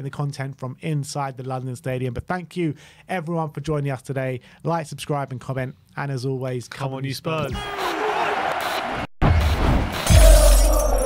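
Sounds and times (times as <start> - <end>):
shattering glass crash: 10.1 - 11.0.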